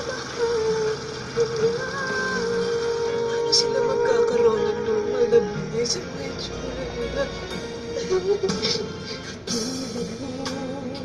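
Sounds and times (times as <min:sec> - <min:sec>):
karaoke backing music: 0:00.0 - 0:11.0.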